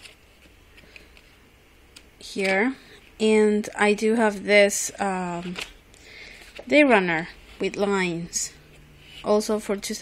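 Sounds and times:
paper pages rustling: 0.0s - 1.3s
low room hum: 0.0s - 10.0s.

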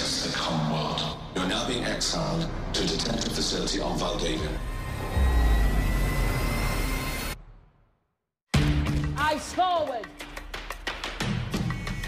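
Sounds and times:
cinematic music bed: 0.0s - 9.4s
high tone rising in pitch: 4.4s - 7.4s.

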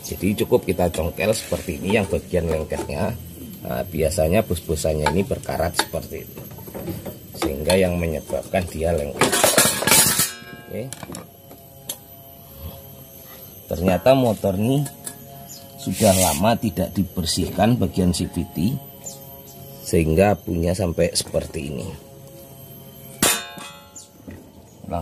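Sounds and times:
metallic clang: 9.2s - 10.7s, 23.1s - 24.0s.

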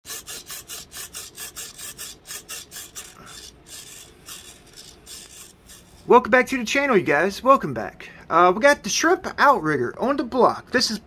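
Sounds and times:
rasping strokes on wood: 0.0s - 6.1s.

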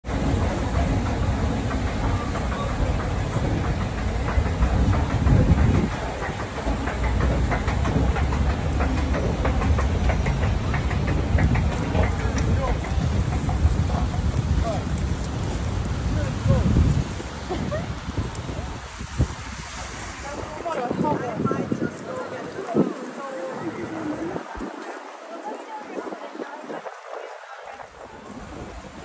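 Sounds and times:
escalator rumbling: 0.0s - 29.0s
street noise: 0.0s - 29.0s
people's voices: 0.1s - 29.0s.

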